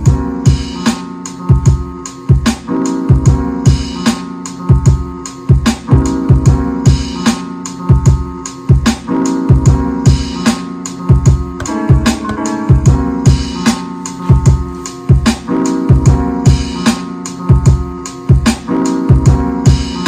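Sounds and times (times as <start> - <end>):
snare hits: 11.6 - 12.6.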